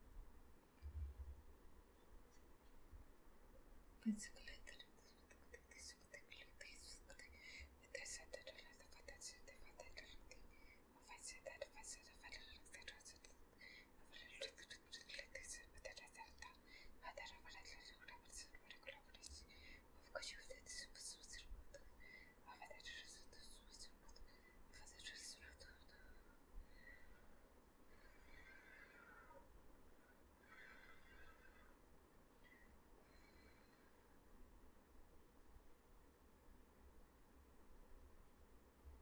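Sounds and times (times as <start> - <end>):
person whispering: 4.0 - 27.0.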